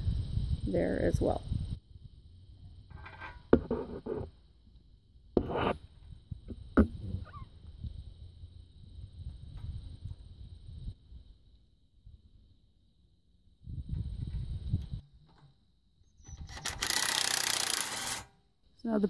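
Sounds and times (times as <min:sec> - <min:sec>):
rubber hoses rubbing on metal: 0:05.4 - 0:05.8
cordless drill running: 0:16.5 - 0:18.3.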